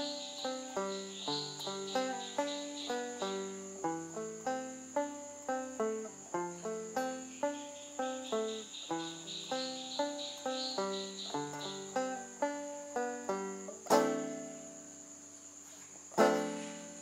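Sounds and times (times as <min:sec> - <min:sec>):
banjo picking melody: 0:00.0 - 0:17.0.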